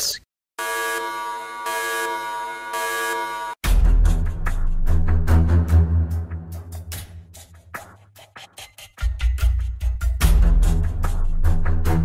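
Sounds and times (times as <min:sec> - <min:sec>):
electronic alarm buzzer: 0:00.6 - 0:03.6.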